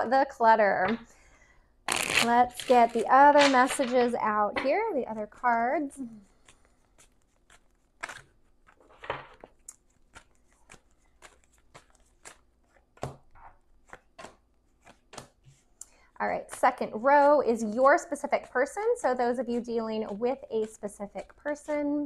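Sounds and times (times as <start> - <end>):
cards clicking and tapping: 2.6 - 4.8, 6.4 - 15.6.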